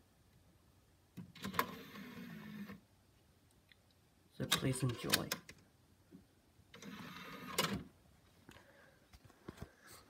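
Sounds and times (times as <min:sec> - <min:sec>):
disc tray motor whirring: 0:01.4 - 0:02.8, 0:06.8 - 0:07.8.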